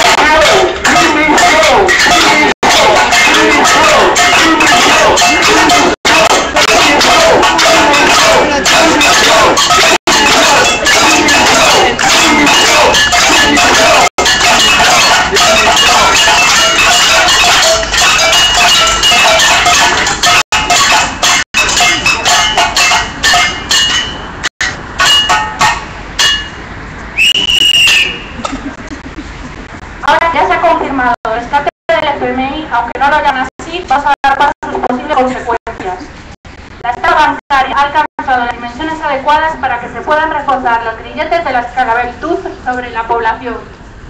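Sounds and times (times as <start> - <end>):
crowd voices: 0.0 - 20.3
clanking hand percussion: 0.0 - 26.7
street noise: 0.0 - 44.0
shrill whistle blast: 27.2 - 28.4.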